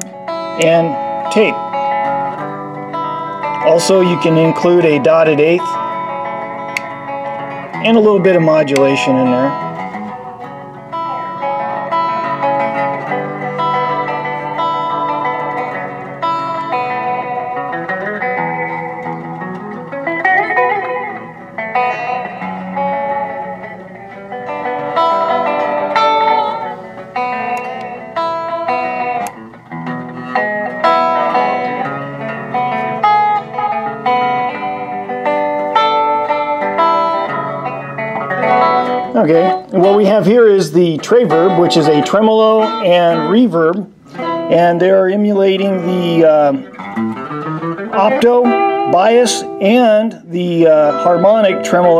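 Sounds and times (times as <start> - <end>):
electric guitar with delay echo: 0.0 - 51.9.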